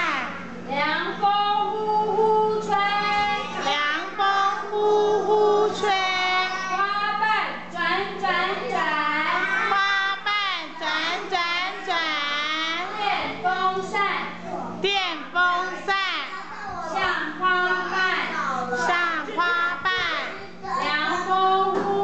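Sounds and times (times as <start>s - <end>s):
children singing: 2.2s - 6.9s.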